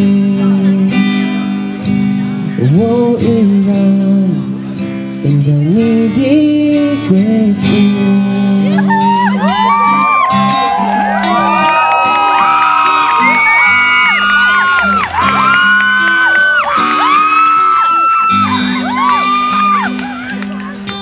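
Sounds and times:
acoustic guitar notes: 0.0 - 21.0
audience whooping and cheering: 8.8 - 21.0.

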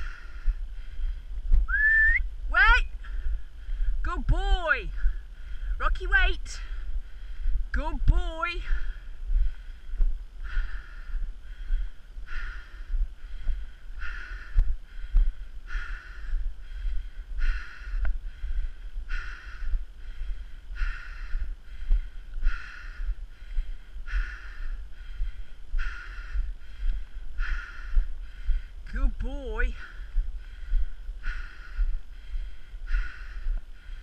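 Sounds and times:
wind rumble on microphone: 0.0 - 4.1, 6.4 - 28.9
person breathing heavily: 0.0 - 34.0.

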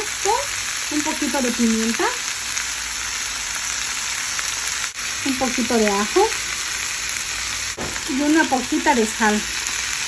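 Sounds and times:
oil sizzling in frying pan: 0.0 - 10.0.

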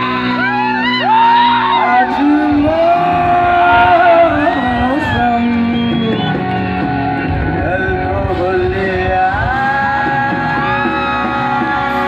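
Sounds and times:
crowd shouting and cheering: 0.0 - 12.0
live band playing: 0.0 - 12.0
amplified voices: 0.8 - 12.0.

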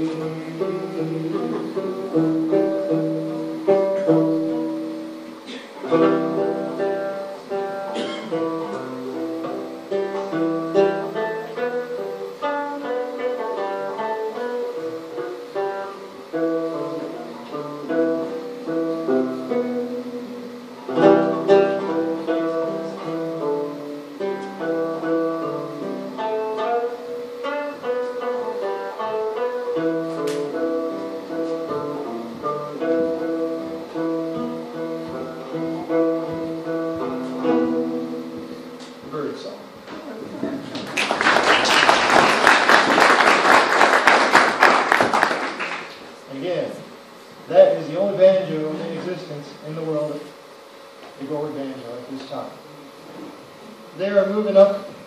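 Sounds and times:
banjo plucked melody: 0.0 - 38.8
banjo strummed chords: 0.0 - 39.3.

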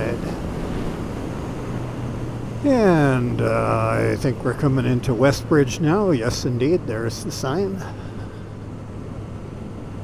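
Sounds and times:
wind rushing over microphone: 0.0 - 5.3
motorcycle engine drone: 0.0 - 10.0.

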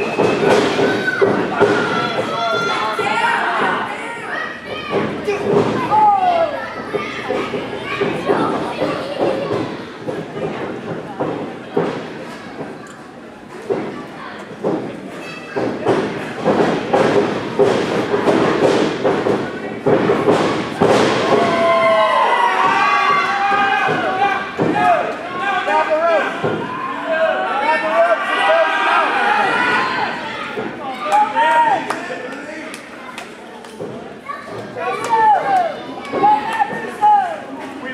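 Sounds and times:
crowd shouting and yelling: 0.0 - 10.6, 20.2 - 37.9.

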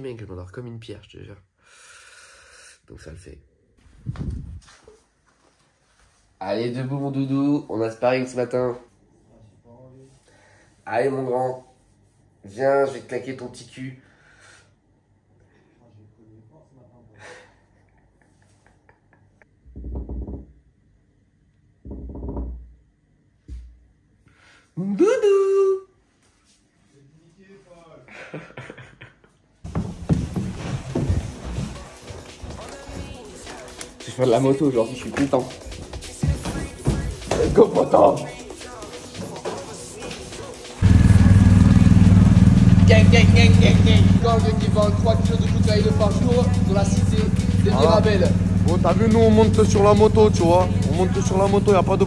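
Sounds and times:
motorcycle engine idling: 40.8 - 52.0
muffled wordless vocal sounds: 44.2 - 52.0.

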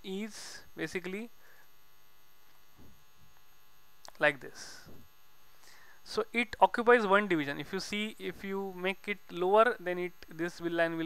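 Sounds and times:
electrical mains hum: 0.0 - 11.0
faint buzz: 0.0 - 11.0.

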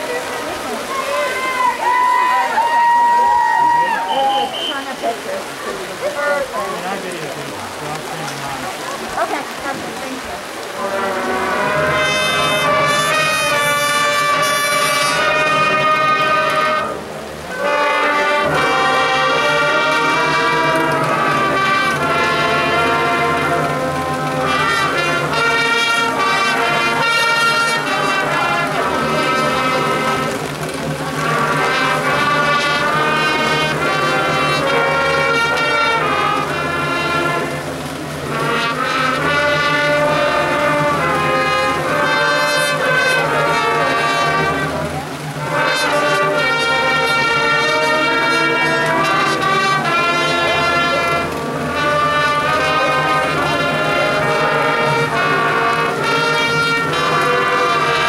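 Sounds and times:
marching band brass chords: 0.0 - 58.0.

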